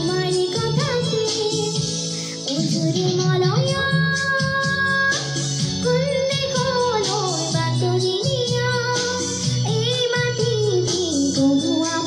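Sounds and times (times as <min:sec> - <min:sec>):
girl singing: 0:00.0 - 0:12.0.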